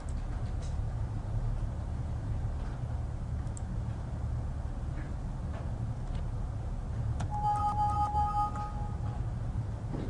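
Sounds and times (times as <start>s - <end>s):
low room hum: 0.0s - 10.0s
two-pitch electronic tone: 7.3s - 9.2s.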